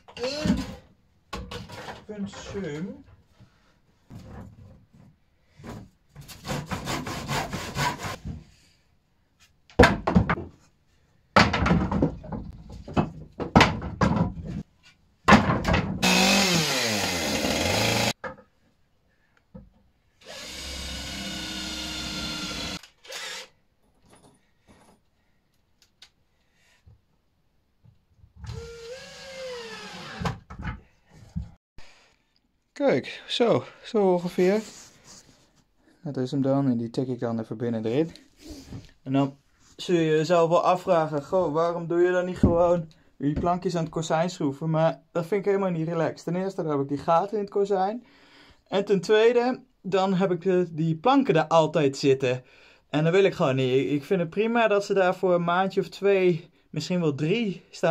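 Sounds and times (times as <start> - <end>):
hand saw cutting wood: 6.2 - 8.2, 16.0 - 18.2
knocks of handling wood: 9.7 - 10.7, 11.4 - 16.0
chainsaw cutting: 16.0 - 18.2
cordless drill whirring: 16.0 - 18.2, 20.2 - 23.5, 28.5 - 30.2.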